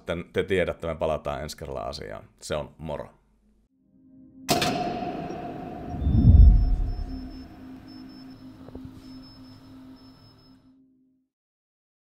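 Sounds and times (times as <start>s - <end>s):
thin sustained tones: 4.0s - 10.6s
ringing hit tail: 4.2s - 8.6s
deep low boom: 4.5s - 7.9s.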